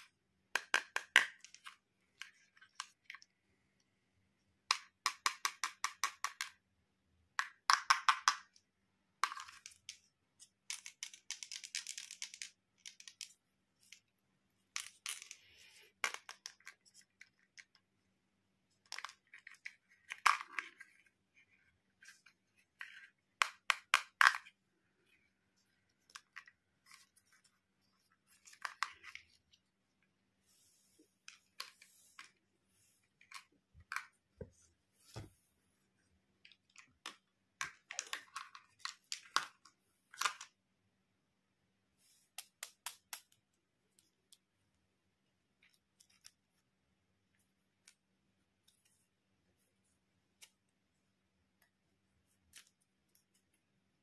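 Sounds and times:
plastic toys clicking and rattling: 9.2s - 14.1s.

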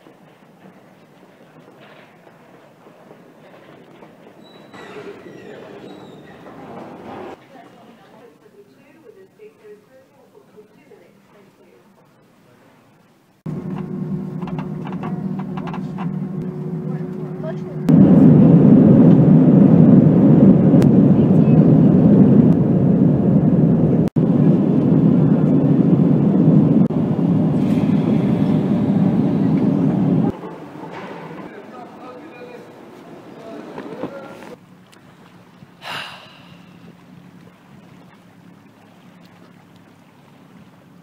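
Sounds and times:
steady hum with faint tone: 8.4s - 33.4s
jet engines roaring in cabin: 13.4s - 34.6s.

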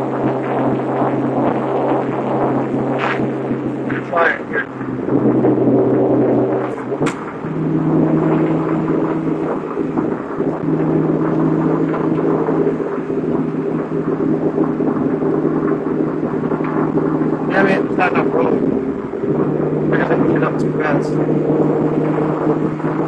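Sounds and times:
car engine drone: 0.0s - 23.0s.

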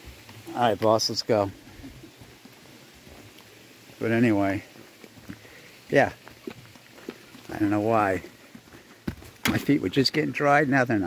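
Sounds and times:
footsteps on leafy dirt trail: 0.0s - 10.4s.

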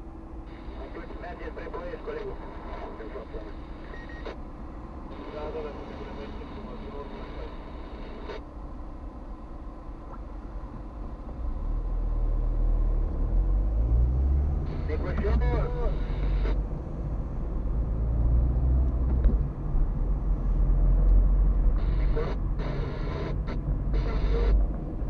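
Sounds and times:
car engine rumble: 0.0s - 25.0s.

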